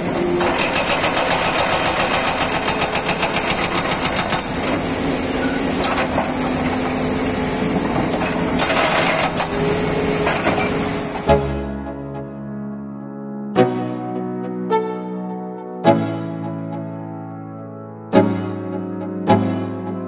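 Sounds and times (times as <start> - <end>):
hydraulic breaker pounding rubble: 0.0 - 11.6
excavator engine running: 0.0 - 11.7.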